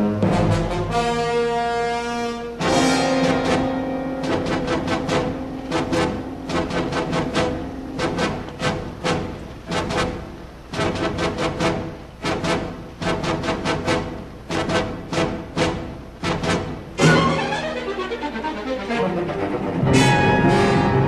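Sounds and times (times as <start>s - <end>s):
timpani and drum strikes: 0.0s - 1.5s, 2.6s - 17.8s, 19.8s - 21.0s
brass chord: 0.0s - 21.0s
low sustained note: 2.6s - 10.4s.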